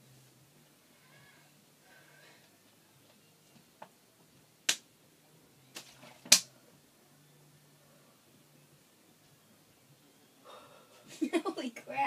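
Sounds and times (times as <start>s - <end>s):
plastic bottle crack: 5.7s - 6.5s.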